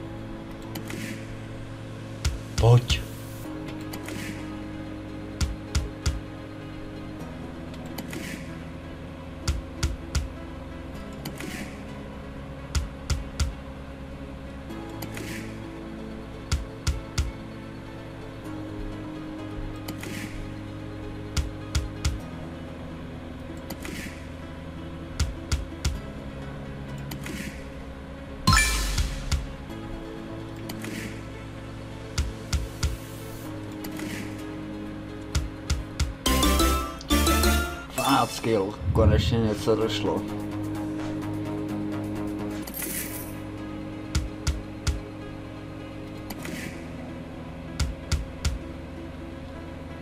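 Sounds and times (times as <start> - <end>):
electronic background music loop: 2.1 - 8.6, 32.2 - 34.6, 35.2 - 42.6.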